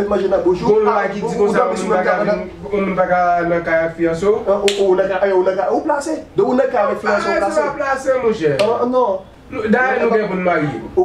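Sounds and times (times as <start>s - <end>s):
man speaking animatedly: 0.0s - 11.0s
sharp snap: 4.7s - 4.9s.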